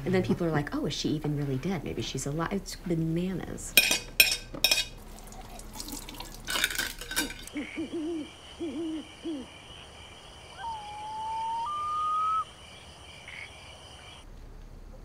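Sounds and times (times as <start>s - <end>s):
dishes and cutlery clattering: 3.8s - 7.5s
owl hooting: 7.5s - 14.2s
high insect chorus: 7.5s - 14.3s.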